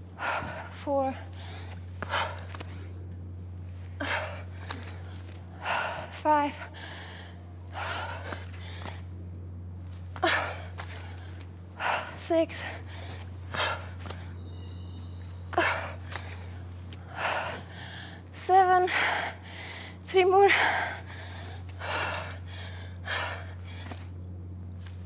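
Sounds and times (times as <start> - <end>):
steady low hum: 0.0 - 25.0
woman breathing hard: 0.1 - 2.9, 3.8 - 9.1, 10.2 - 14.4, 15.2 - 24.1.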